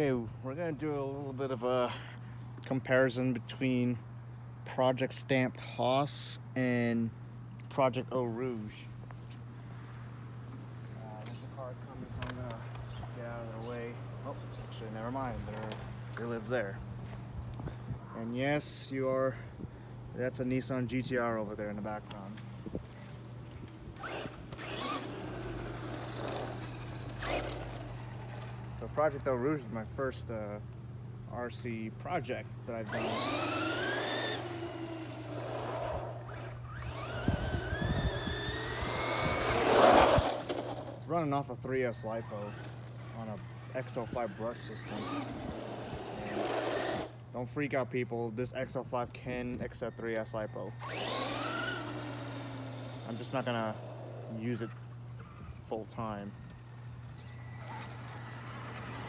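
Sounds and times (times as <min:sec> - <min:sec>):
rc truck motor whine: 0:11.1 - 0:16.7, 0:23.4 - 0:29.5, 0:32.7 - 0:41.0, 0:41.7 - 0:47.2, 0:49.7 - 0:59.0.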